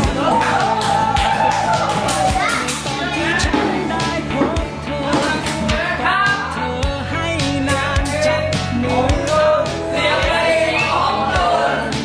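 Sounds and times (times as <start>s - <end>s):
pop drums and bass: 0.0s - 12.0s.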